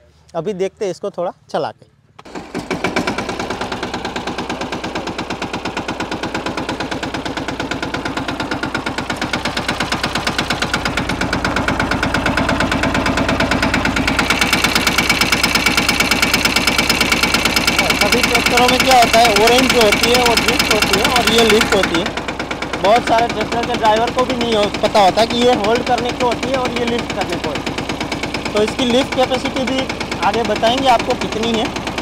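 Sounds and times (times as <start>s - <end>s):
tractor diesel engine chugging: 2.3s - 32.0s.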